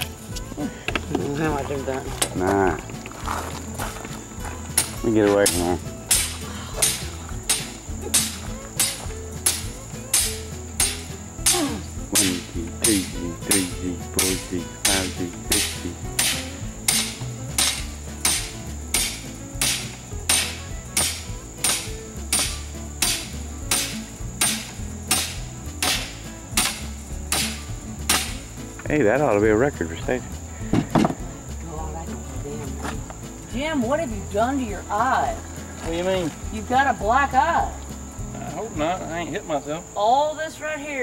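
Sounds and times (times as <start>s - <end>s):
hammer blows ringing: 5.5s - 28.4s.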